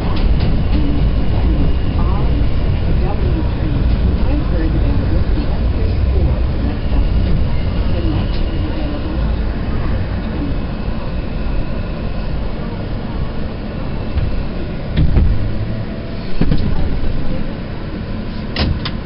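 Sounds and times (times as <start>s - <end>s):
subway train wheels rumbling on rail: 0.0s - 19.0s.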